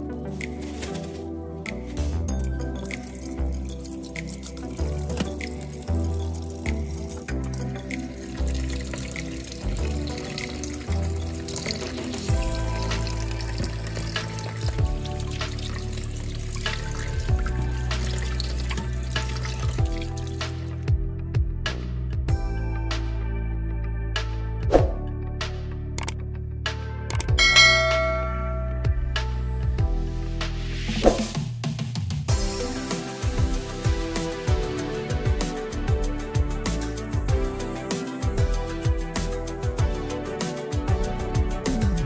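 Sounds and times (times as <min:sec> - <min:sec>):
background music: 0:00.0 - 0:42.0
tap water splashing into metal bowl: 0:02.9 - 0:20.7.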